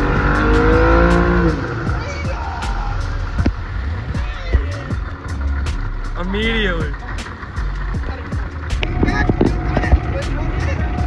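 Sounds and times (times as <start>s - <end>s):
motorboat engine running: 0.0s - 11.0s
music with steady beat: 0.0s - 11.0s.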